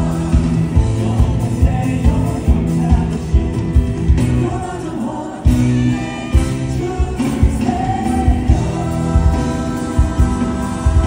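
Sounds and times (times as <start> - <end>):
male voices singing together: 0.0 - 3.6, 4.2 - 11.0
live band playing: 0.0 - 11.0.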